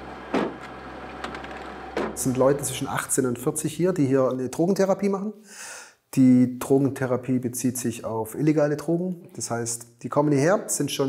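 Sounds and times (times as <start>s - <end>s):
van door thump: 0.3s - 0.6s, 1.3s - 2.2s.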